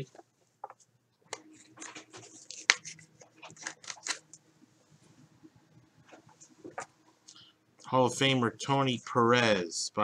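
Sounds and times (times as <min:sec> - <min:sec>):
plastic card sleeve crinkling: 0:01.6 - 0:04.4.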